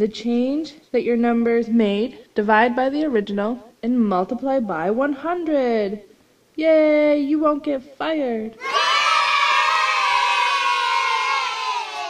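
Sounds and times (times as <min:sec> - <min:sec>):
crowd cheering: 0:08.6 - 0:12.0.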